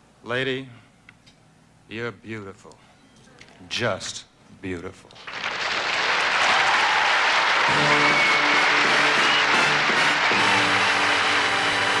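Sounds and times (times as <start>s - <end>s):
audience applauding: 5.2s - 12.0s
band playing: 7.6s - 12.0s.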